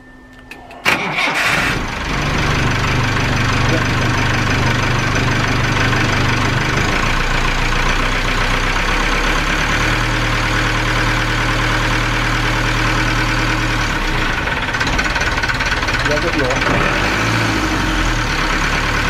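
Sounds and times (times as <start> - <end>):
boat engine idling: 1.3 - 8.7.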